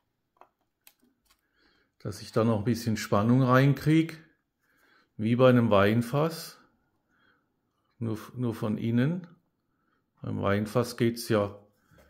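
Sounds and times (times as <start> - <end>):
hands handling plastic part: 0.2 - 1.5.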